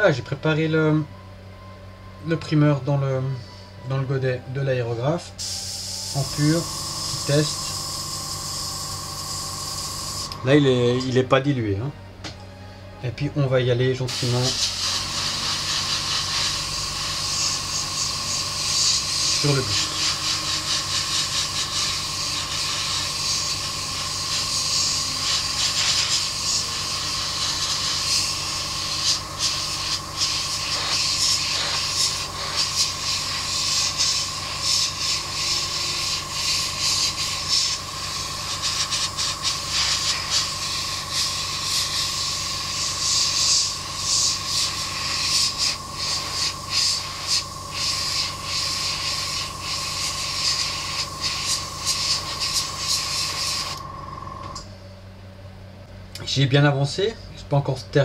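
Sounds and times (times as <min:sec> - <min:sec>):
airbrush spraying hiss: 0:05.4 - 0:10.5, 0:14.1 - 0:53.9.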